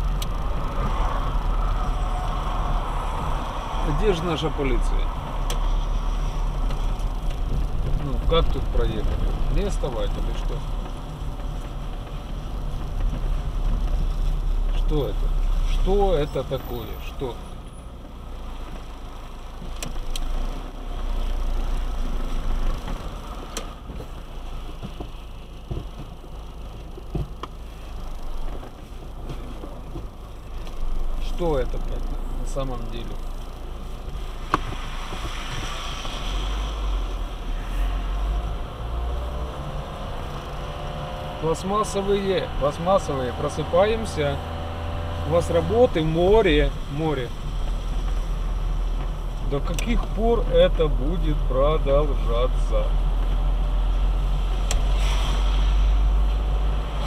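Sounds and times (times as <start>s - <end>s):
car driving on wet road: 0.0s - 57.0s
tyres hissing on wet road: 30.9s - 57.0s.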